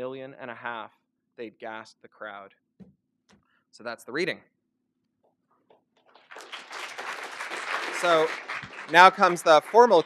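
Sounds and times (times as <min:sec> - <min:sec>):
audience applause: 0:06.1 - 0:10.0.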